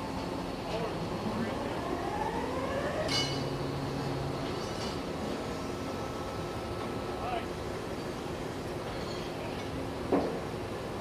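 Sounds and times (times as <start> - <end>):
steady machinery noise: 0.0 - 11.0.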